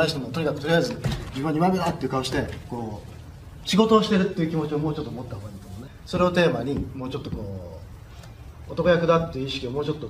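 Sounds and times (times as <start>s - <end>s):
man speaking: 0.0s - 8.0s, 8.7s - 10.0s.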